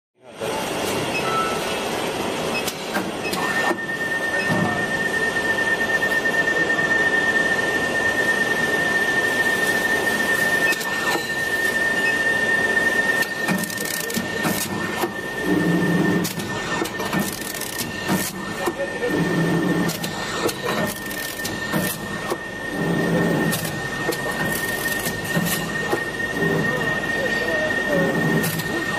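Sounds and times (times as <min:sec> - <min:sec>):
high machine whine: 0:00.2 - 0:28.9
sharp machine clicks: 0:13.2 - 0:15.1, 0:16.2 - 0:18.8, 0:19.9 - 0:22.4.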